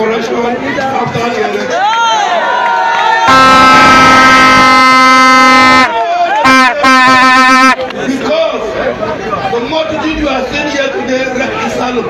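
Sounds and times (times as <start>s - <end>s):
loud steady horn blast: 3.2s - 7.8s.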